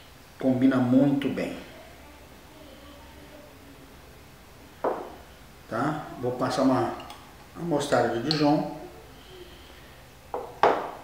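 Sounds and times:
jar knocking on stone countertop: 4.8 - 5.1, 10.3 - 11.0.

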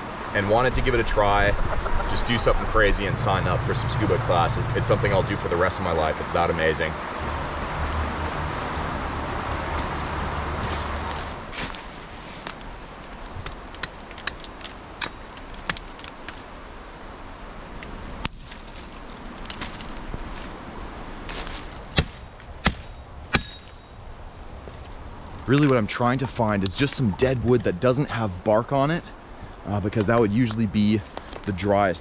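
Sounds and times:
creek water rushing: 0.0 - 13.2
hatchet chopping dead branches: 13.4 - 16.5, 18.2 - 20.3, 21.3 - 23.8.

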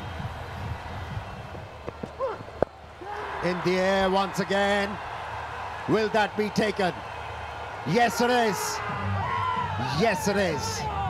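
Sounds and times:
stadium background hum: 0.0 - 11.0.

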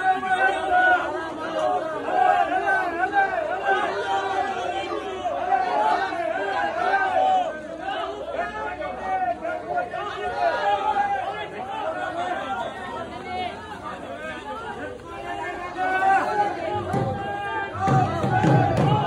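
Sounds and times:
crowd of men calling out: 0.0 - 19.0.

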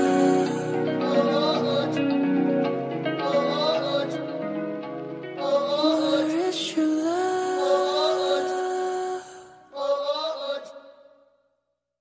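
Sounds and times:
pop song held note: 0.0 - 2.0
drawn-out vocal note: 0.0 - 4.5, 5.4 - 11.1.

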